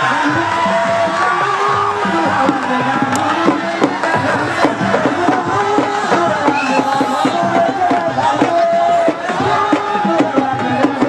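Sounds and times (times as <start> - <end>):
spectators erupting: 0.0 - 10.2
crowd shouting chanting and singing: 0.0 - 11.0
traditional drumming: 0.0 - 11.0.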